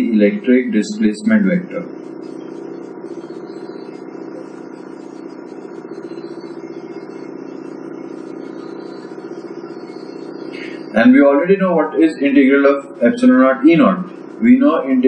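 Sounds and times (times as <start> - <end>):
steady machine hum: 0.0 - 15.0.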